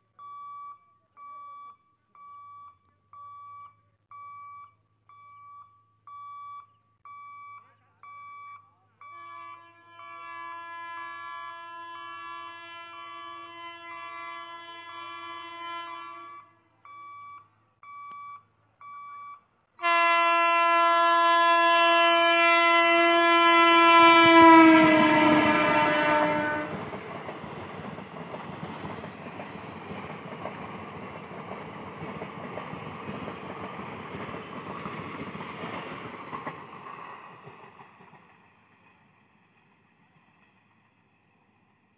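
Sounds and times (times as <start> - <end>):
locomotive horn blasts: 9.0 - 16.7, 19.8 - 26.8
train coaches rumbling on rails: 19.9 - 41.9.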